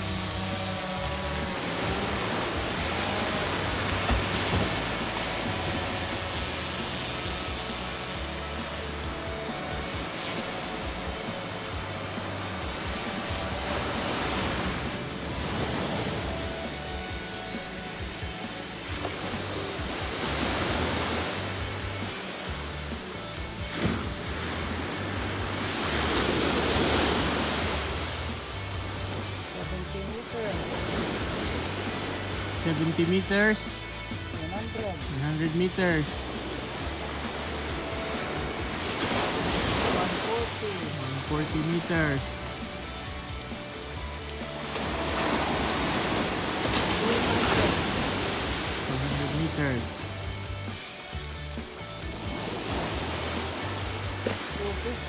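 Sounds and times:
background music with bass line: 0:00.0 - 0:55.0
surf washing onto beach: 0:00.0 - 0:55.0.

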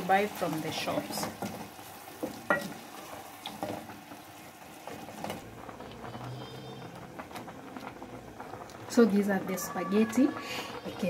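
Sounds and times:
water bubbling in a pot: 0:00.0 - 0:11.0.

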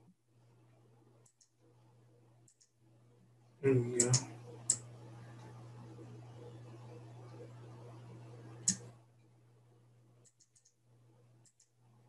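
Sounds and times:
mouse and keyboard clicks: 0:08.6 - 0:08.9, 0:10.2 - 0:10.8.

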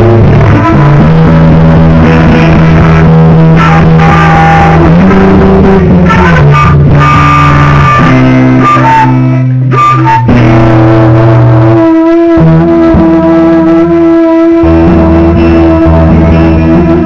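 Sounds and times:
acoustic guitar: 0:00.0 - 0:17.0
flute notes: 0:00.0 - 0:17.0.

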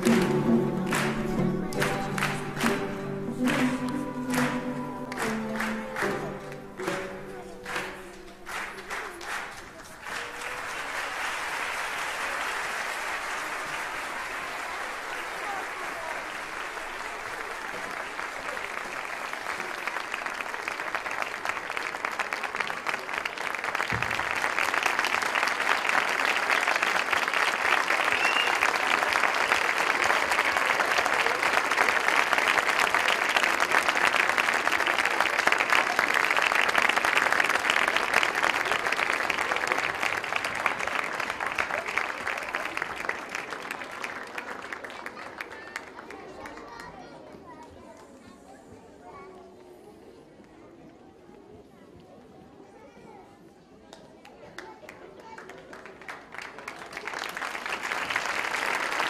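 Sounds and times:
audience applauding: 0:00.0 - 0:47.1, 0:54.6 - 0:59.0.

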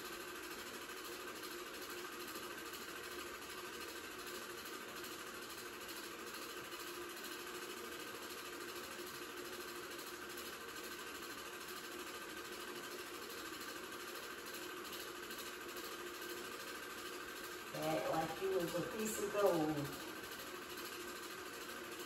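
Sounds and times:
film projector whirring: 0:00.0 - 0:22.0.

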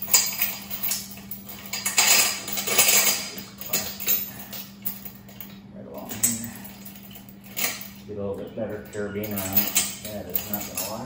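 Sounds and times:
steel chain clinking and rattling: 0:00.0 - 0:11.0.

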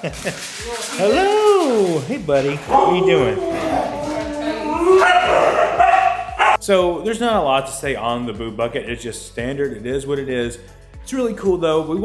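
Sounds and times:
husky whine-howling: 0:02.7 - 0:06.6.

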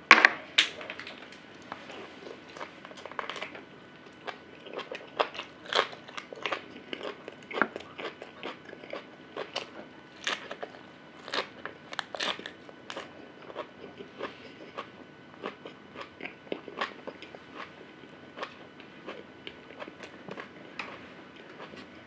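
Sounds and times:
man chewing and biting bone: 0:01.9 - 0:22.0.

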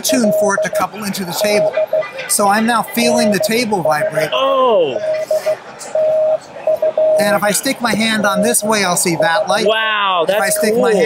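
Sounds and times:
morse code beeps: 0:00.0 - 0:11.0.

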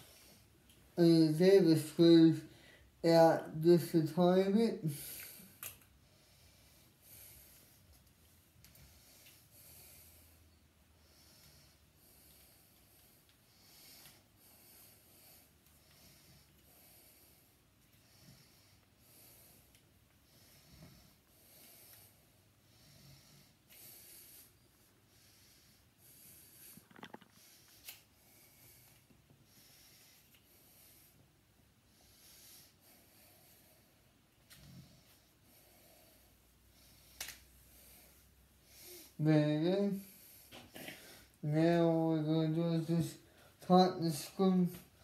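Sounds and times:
person breathing faintly: 0:04.8 - 0:41.5
small sharp clicks: 0:37.2 - 0:37.4.

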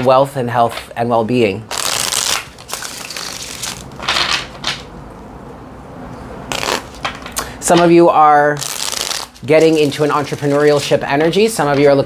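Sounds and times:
cards being shuffled: 0:01.7 - 0:04.9, 0:06.5 - 0:07.9, 0:08.6 - 0:12.0.

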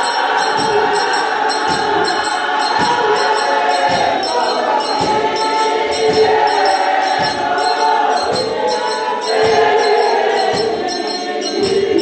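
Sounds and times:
sharp rhythmic strokes: 0:00.0 - 0:12.0
women's choir singing a hymn: 0:00.0 - 0:12.0.

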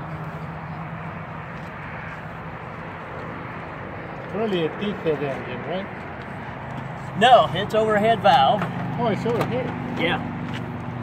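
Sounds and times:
low engine-like hum: 0:00.0 - 0:11.0
outdoor background noise: 0:00.0 - 0:11.0.

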